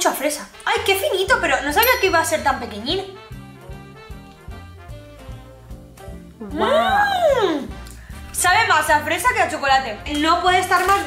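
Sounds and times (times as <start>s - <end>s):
jazzy swing music: 0.0s - 11.0s.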